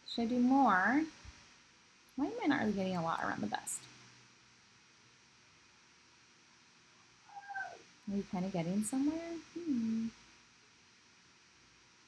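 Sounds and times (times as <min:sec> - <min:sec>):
cat meowing: 0:07.3 - 0:07.8.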